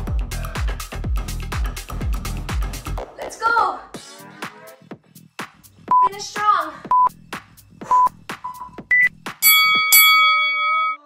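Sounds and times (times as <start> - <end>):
dance music with singing: 0.0 - 8.4
timer countdown beeps: 5.9 - 6.2, 6.9 - 7.2, 7.9 - 11.0.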